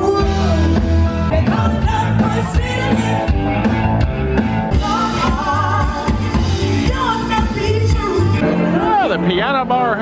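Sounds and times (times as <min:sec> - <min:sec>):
drum kit: 0:00.0 - 0:10.0
electric guitar: 0:00.0 - 0:10.0
live blues band: 0:00.0 - 0:10.0.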